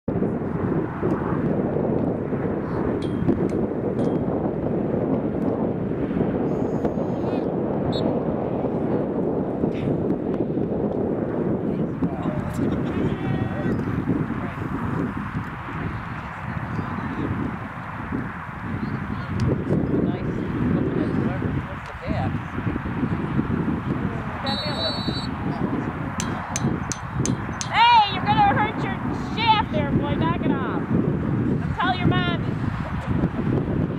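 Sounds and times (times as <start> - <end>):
wind buffeting microphone: 0.1 - 33.9
referee's whistle: 24.4 - 25.4.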